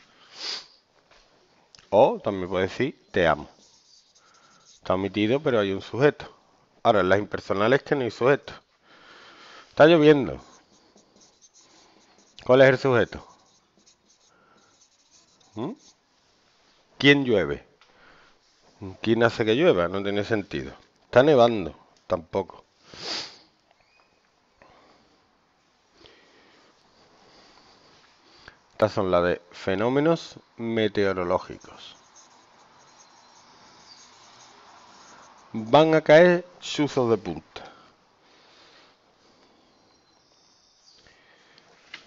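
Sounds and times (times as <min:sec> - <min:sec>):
marker scratching on whiteboard: 0:02.3 - 0:05.7, 0:10.0 - 0:16.0, 0:31.2 - 0:35.9.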